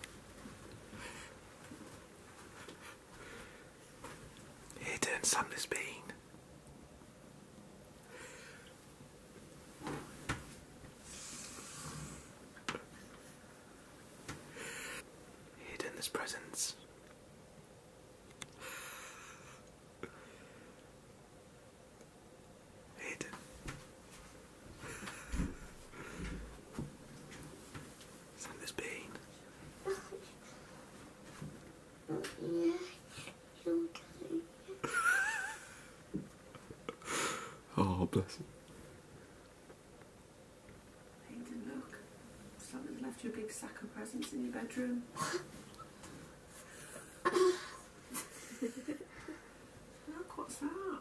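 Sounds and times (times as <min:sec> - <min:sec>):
faint whispering: 0:04.8 - 0:06.2, 0:15.6 - 0:16.9, 0:22.9 - 0:23.4, 0:28.4 - 0:30.4
hiss of breath: 0:37.0 - 0:37.6.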